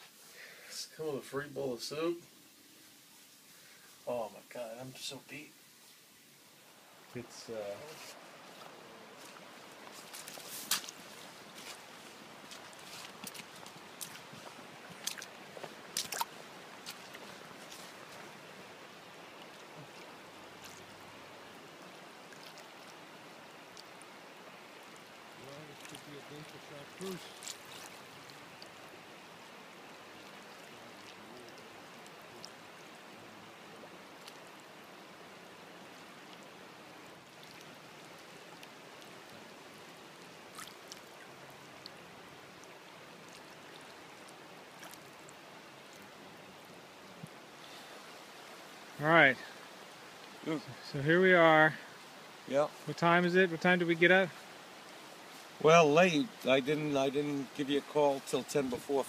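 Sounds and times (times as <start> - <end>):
river water rushing: 0.0 - 59.0
footsteps through dry leaves: 9.9 - 18.0
twigs snapping: 15.9 - 17.3.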